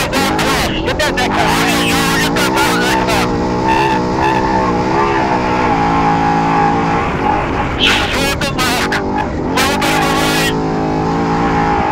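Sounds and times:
race engine at high revs: 0.0 - 11.9
wind and road noise: 0.0 - 11.9.

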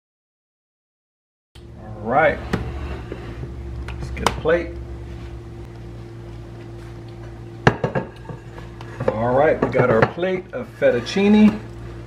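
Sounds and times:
steady low hum: 1.6 - 12.0.

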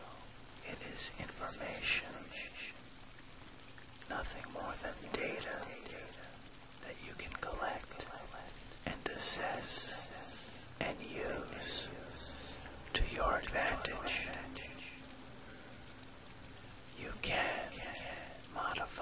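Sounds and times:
person whispering: 0.0 - 2.8, 4.1 - 15.2, 16.5 - 19.0
rain: 0.0 - 19.0.

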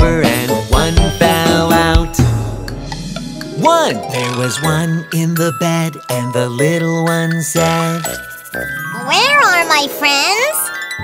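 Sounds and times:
chiming jingle music: 2.9 - 11.0
cartoon voice speaking: 8.9 - 10.7.

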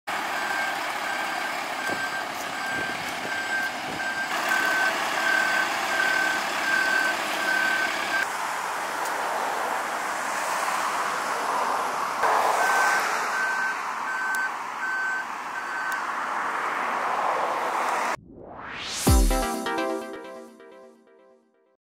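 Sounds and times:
truck reversing alarm beeping: 0.1 - 8.3, 12.2 - 16.2.

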